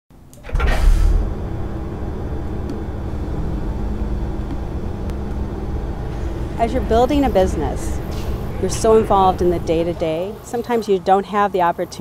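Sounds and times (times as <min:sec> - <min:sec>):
low mechanical rumble: 0:00.1 - 0:11.7
faint hum: 0:00.2 - 0:12.0.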